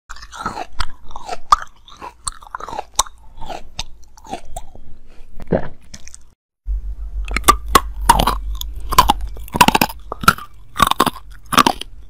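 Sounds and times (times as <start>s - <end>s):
wet chewing: 0.1s - 4.8s, 7.2s - 12.0s
crunchy ice crunching: 7.4s - 11.9s.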